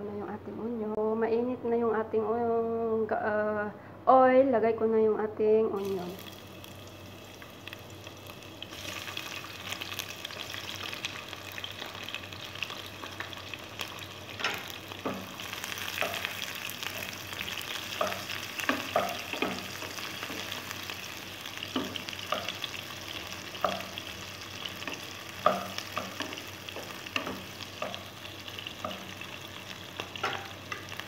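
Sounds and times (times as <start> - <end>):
onion sizzling in hot oil: 5.8 - 31.0.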